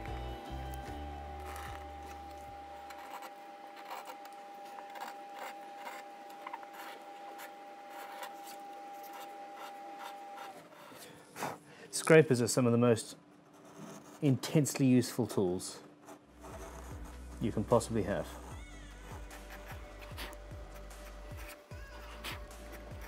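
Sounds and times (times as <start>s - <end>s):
soft background music: 0.0s - 3.3s, 11.9s - 23.0s
card scraper scraping wood: 0.7s - 11.6s, 16.4s - 23.0s.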